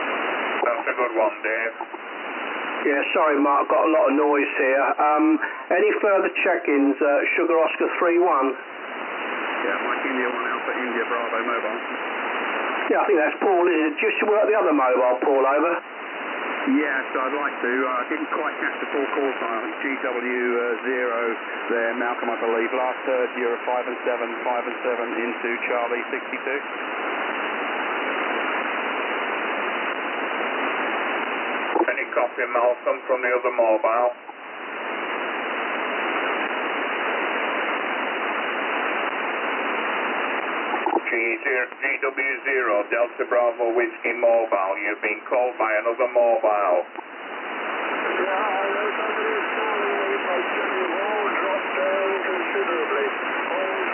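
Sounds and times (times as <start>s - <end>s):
radio band noise hiss: 0.0s - 53.9s.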